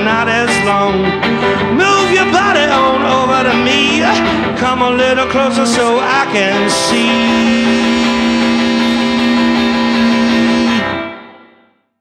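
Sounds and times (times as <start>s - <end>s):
rock band final chord ringing: 0.1s - 11.5s.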